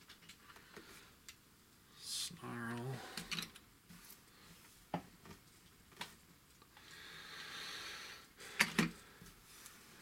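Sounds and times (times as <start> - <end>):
soft hissy rustle: 1.8 - 8.4, 9.0 - 10.0.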